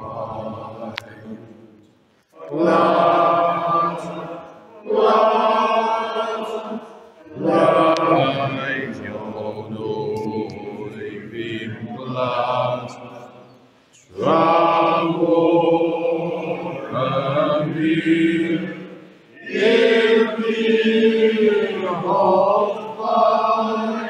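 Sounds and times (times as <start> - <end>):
group singing held phrases: 0.0 - 24.0.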